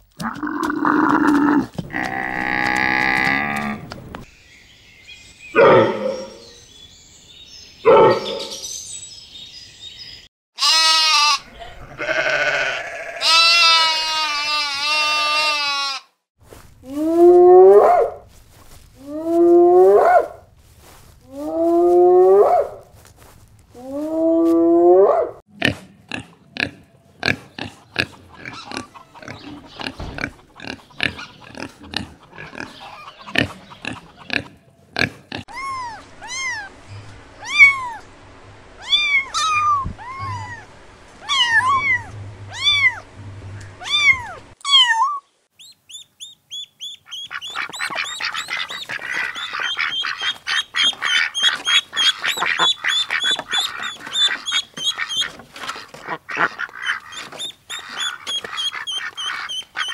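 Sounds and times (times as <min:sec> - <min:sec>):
pig grunting: 0:00.2 - 0:04.0, 0:25.5 - 0:35.4.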